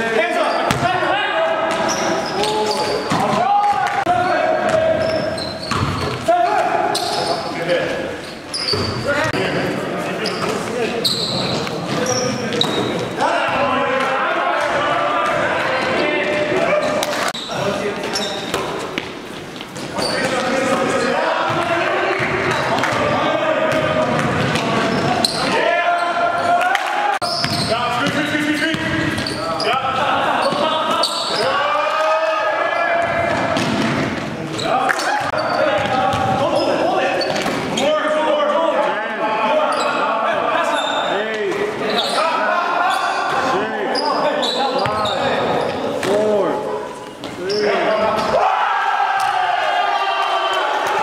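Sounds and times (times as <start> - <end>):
basketball bouncing on gym floor: 0.7 - 0.9, 3.1 - 6.2, 27.4 - 29.4, 35.2 - 36.4.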